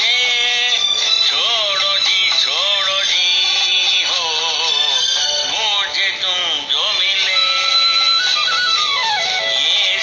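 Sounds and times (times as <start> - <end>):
backing music: 0.0 - 10.0
person singing ornamented notes: 0.0 - 10.0.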